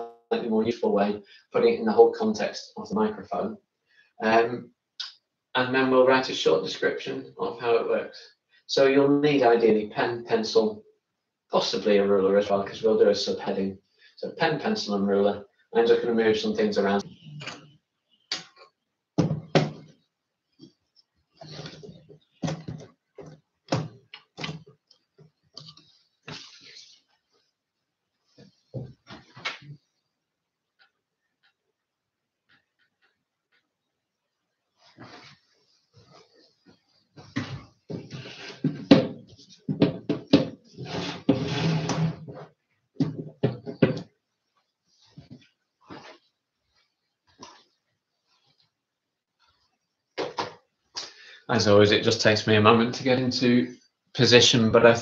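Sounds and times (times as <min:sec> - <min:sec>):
objects knocking and rustling: 0:18.5 - 0:26.7, 0:28.3 - 0:29.9, 0:36.0 - 0:44.2
desk items knocking on wooden desk: 0:19.2 - 0:19.9, 0:22.4 - 0:24.0, 0:37.3 - 0:42.0, 0:43.0 - 0:44.1
recording device handling: 0:20.6 - 0:27.3.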